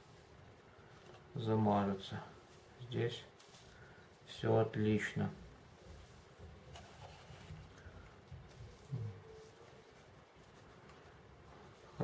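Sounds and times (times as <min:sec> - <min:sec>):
handling plastic model: 0:06.0 - 0:12.0.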